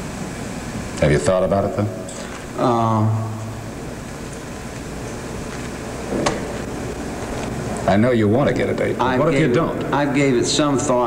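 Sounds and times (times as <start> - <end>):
recording hiss and hum: 0.0 - 11.0.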